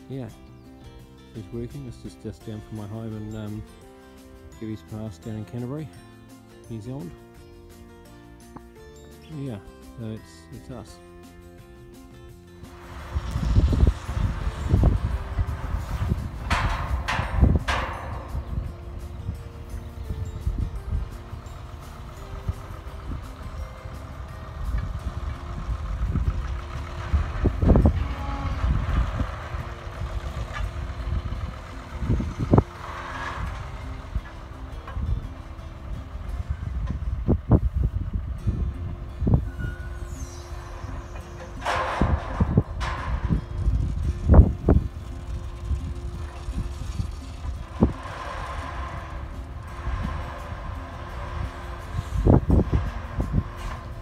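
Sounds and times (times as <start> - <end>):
dragline engine running: 11.0 - 54.0
gusty low rumble: 12.2 - 54.0.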